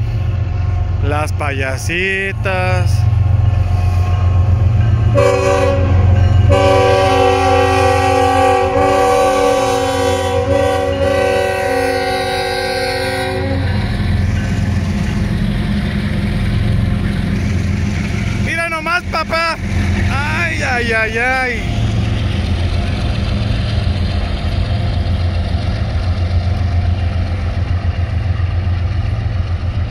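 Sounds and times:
freight locomotives rumbling: 0:00.0 - 0:29.9
locomotive air horn: 0:05.1 - 0:13.9.

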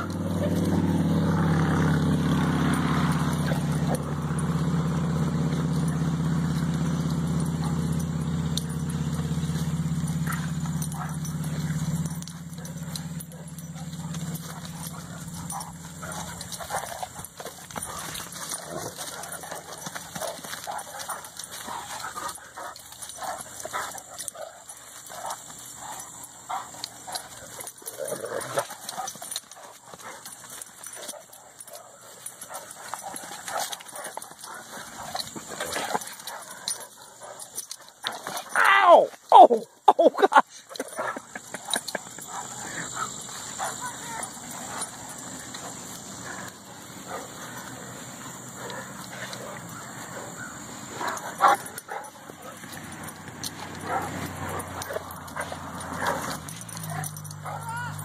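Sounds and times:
steady low hum: 0:00.0 - 0:38.5, 0:40.6 - 0:57.5
puppies play-wrestling: 0:00.0 - 0:39.9, 0:40.6 - 0:58.0.

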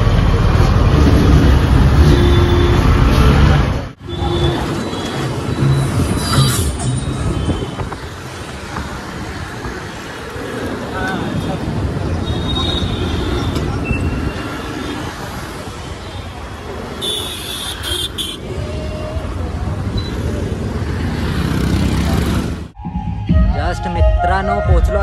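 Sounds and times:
motorcycle engine and road noise: 0:00.0 - 0:22.8
surrounding traffic: 0:00.0 - 0:25.0.

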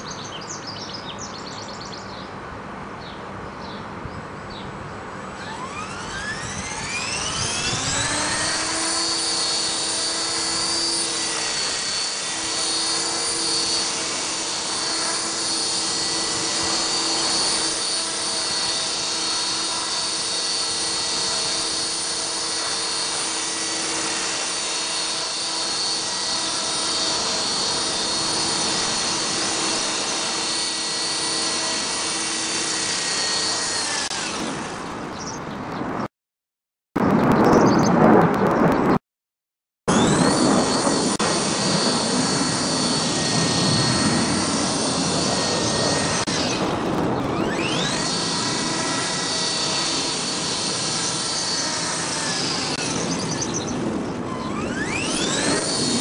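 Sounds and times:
rc helicopter motor whine: 0:05.0 - 0:35.5, 0:39.9 - 0:56.0.

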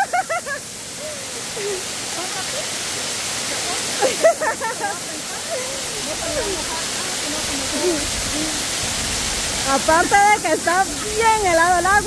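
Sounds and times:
waterfall rushing onto rocks: 0:00.0 - 0:12.0
quiet voices: 0:03.4 - 0:08.8.

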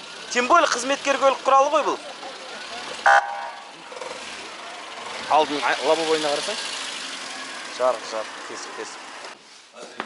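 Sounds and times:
car engine hum: 0:00.0 - 0:09.6
car horn toot: 0:03.0 - 0:03.7.

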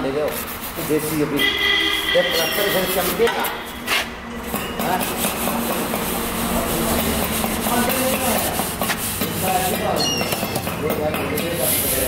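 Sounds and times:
straightedge scraping cement plaster: 0:02.2 - 0:12.0.

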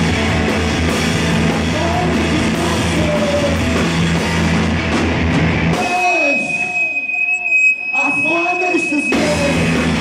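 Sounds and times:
wavering wordless vocal: 0:01.6 - 0:03.6.

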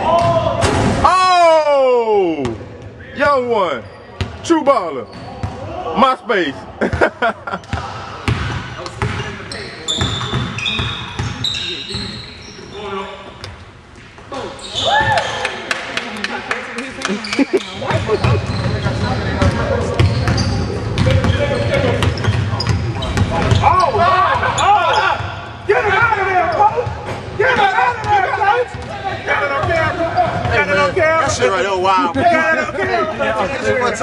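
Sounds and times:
players calling out: 0:16.7 - 0:34.0
basketballs bouncing on wooden floor: 0:17.9 - 0:23.8.

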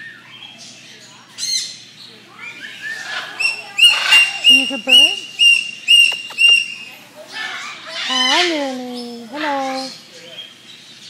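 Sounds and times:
cockatoo soft rising calls: 0:02.4 - 0:08.4
cockatoo squawk: 0:02.4 - 0:08.7.

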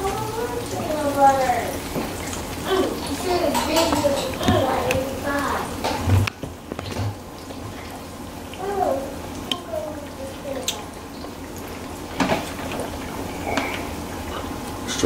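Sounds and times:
food sizzling in hot oil: 0:00.0 - 0:06.0.

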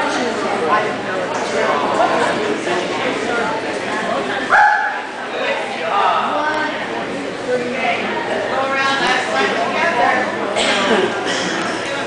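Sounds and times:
people talking: 0:00.0 - 0:12.0
dog barking: 0:04.5 - 0:05.0.

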